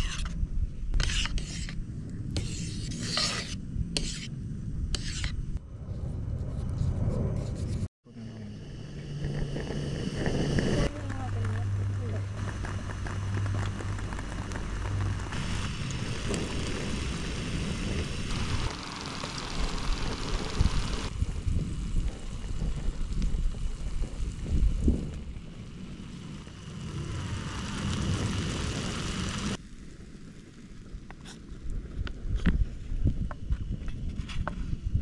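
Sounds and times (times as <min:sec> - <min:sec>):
egg sizzling in a pan: 0:13.2 - 0:29.9
gas burner hiss: 0:13.3 - 0:29.6.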